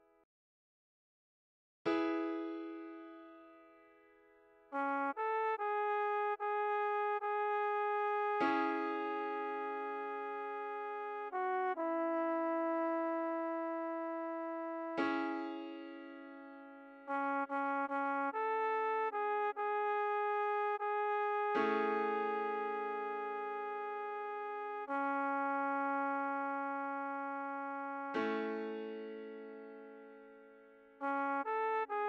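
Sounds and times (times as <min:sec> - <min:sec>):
piano chords: 0:02.0 - 0:04.0, 0:14.8 - 0:17.2, 0:28.0 - 0:31.0
synthesized trombone melody: 0:04.7 - 0:15.8, 0:17.0 - 0:29.3, 0:31.0 - 0:32.0.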